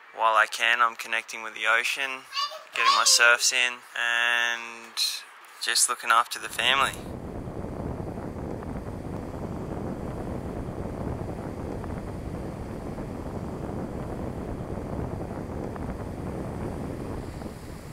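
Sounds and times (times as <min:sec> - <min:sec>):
wind buffeting microphone: 0:06.4 - 0:17.9.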